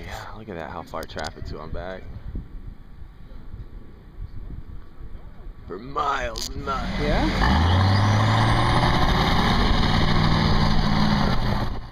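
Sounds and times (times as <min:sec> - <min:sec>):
diesel engine revving hard: 0:06.6 - 0:11.9.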